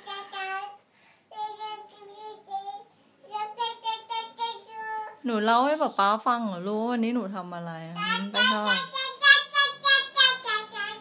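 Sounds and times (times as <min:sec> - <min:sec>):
toddler girl sing-song voice: 0:00.0 - 0:05.3, 0:07.9 - 0:11.0.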